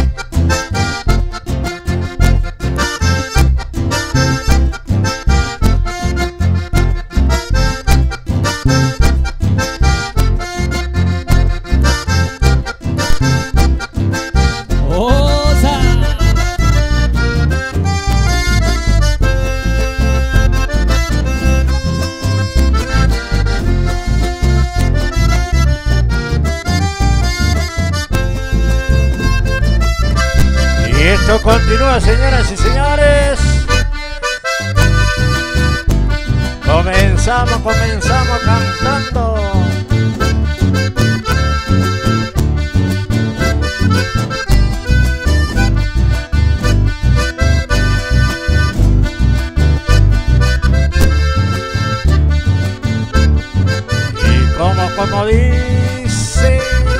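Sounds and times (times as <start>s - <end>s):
acoustic guitar: 0.0s - 56.9s
button accordion folk tune: 0.0s - 56.9s
electric bass: 0.0s - 56.9s.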